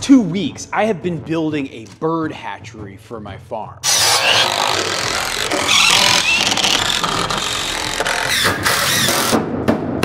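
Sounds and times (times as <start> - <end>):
impact driver driving screw into wood: 3.8 - 9.4.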